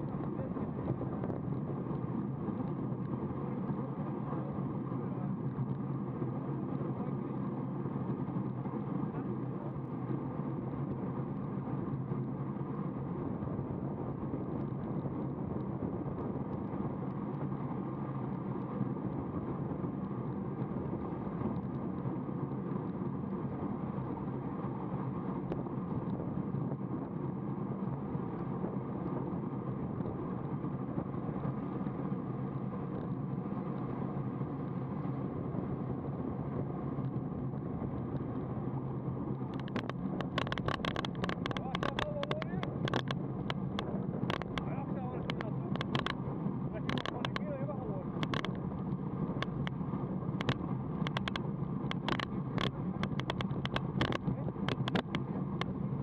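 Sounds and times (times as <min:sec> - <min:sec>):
road noise: 0:14.2 - 0:56.0.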